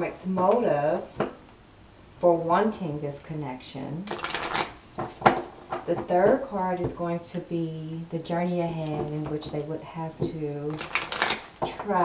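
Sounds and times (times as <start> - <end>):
cards shuffling: 4.1 - 5.3, 10.7 - 11.6.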